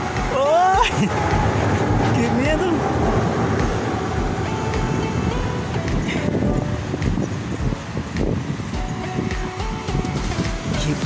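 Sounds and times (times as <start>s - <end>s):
loud steady rumbling: 0.0s - 11.0s.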